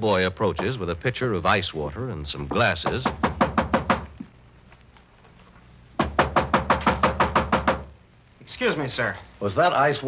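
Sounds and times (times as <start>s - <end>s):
knocking on a door: 2.5s - 4.2s, 6.0s - 7.9s.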